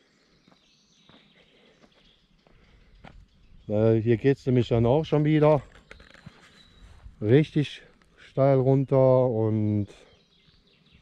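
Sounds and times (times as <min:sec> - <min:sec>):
faint woodland ambience: 0:00.0 - 0:11.0.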